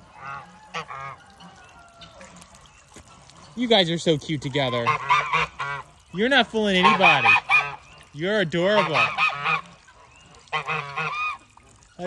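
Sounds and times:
geese honking: 0:00.0 - 0:02.4, 0:04.7 - 0:11.5.

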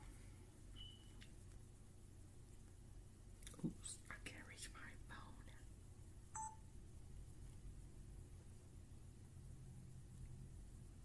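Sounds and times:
short electronic beep: 0:06.4 - 0:06.6.

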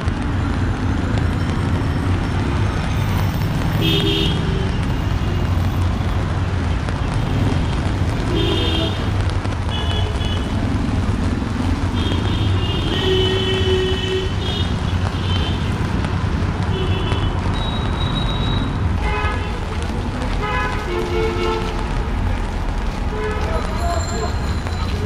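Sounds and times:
traffic rumble on wet street: 0:00.0 - 0:25.0
voices: 0:21.7 - 0:25.0.

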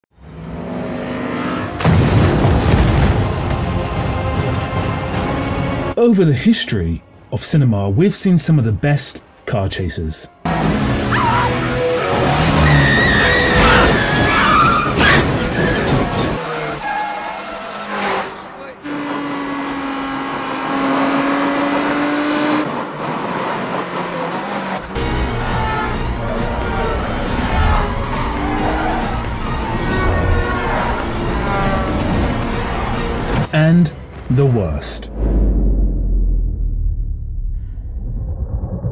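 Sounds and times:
film music score: 0:01.2 - 0:18.7, 0:24.5 - 0:38.9
sudden loud hit: 0:01.8 - 0:03.5, 0:35.1 - 0:38.9
car engines running hard: 0:10.5 - 0:33.5
tyres skidding: 0:10.5 - 0:34.3.

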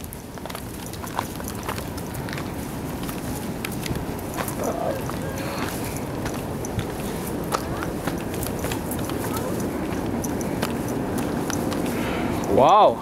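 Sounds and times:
boots crunching on trail: 0:00.0 - 0:12.6.

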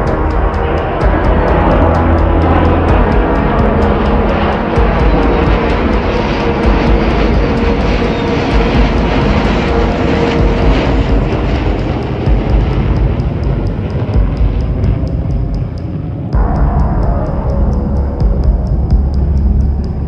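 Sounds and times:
jet engine passing overhead: 0:00.0 - 0:16.4
background music with a beat: 0:00.0 - 0:20.0.

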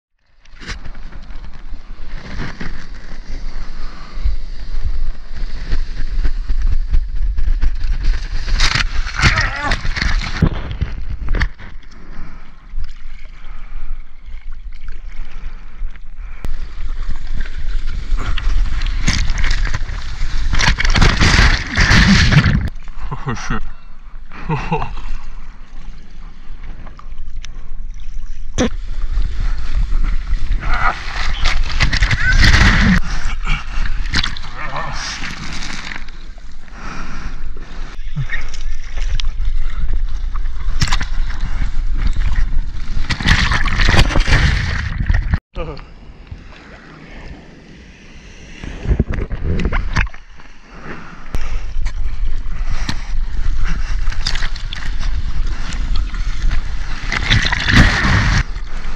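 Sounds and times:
wind rumbling on camera: 0:00.2 - 0:23.0, 0:25.2 - 0:58.9
wind on microphone: 0:00.8 - 0:11.8, 0:47.2 - 0:58.9
water sloshing and splashing: 0:07.9 - 0:15.7, 0:16.5 - 0:23.0, 0:24.9 - 0:36.7, 0:37.7 - 0:45.4, 0:51.4 - 0:58.9
water splashing against surfboard: 0:16.6 - 0:22.8, 0:38.4 - 0:45.4, 0:51.8 - 0:58.9
low rumble of water: 0:51.3 - 0:58.9.

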